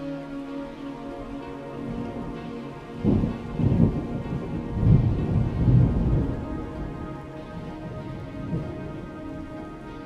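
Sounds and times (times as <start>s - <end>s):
soft instrumental meditation music: 0.0s - 10.0s
steady rain: 0.0s - 10.0s
thunder rumble: 1.4s - 10.0s.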